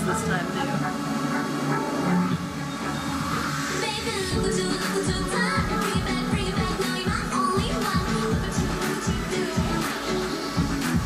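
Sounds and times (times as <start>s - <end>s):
electronic pop music: 0.0s - 11.0s
deep beat: 4.2s - 11.0s.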